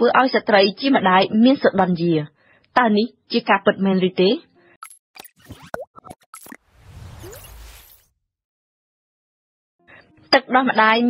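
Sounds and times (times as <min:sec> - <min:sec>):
cartoon pops and clicks: 0:04.8 - 0:07.6.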